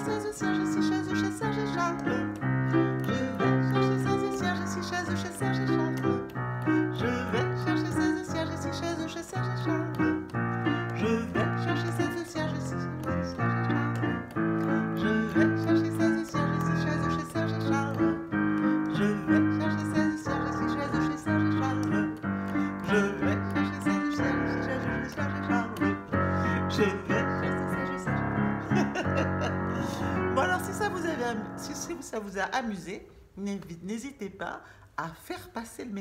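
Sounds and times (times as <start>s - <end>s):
piano chords: 0.0s - 32.4s.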